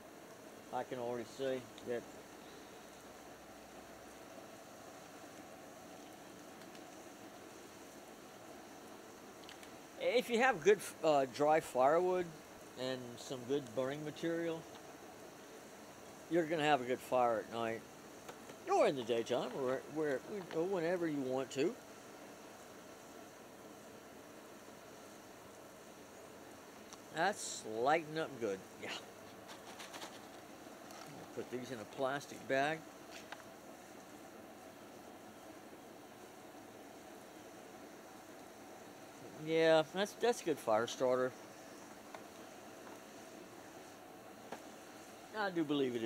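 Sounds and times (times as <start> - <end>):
fire crackling: 0.0 - 46.0
fire hissing: 0.0 - 46.0.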